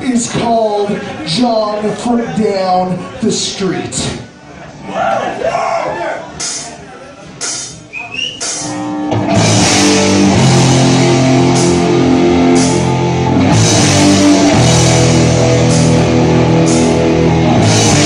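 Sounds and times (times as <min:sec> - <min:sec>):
punk metal band playing live: 0:08.5 - 0:18.0.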